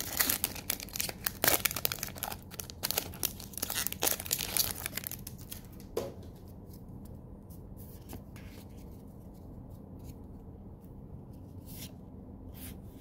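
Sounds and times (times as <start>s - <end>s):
foil wrapper crinkling: 0.0s - 5.8s.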